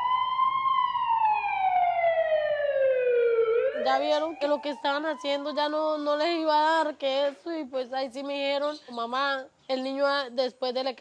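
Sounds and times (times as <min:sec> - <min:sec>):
ambulance siren wailing: 0:00.0 - 0:06.4.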